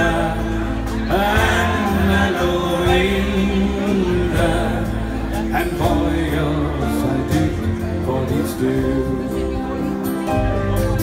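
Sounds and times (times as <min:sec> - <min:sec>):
acoustic and electric guitars: 0:00.0 - 0:11.0.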